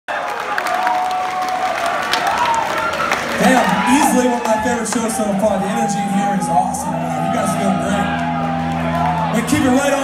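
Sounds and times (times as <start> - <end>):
crowd applauding and cheering: 0.1 - 10.0.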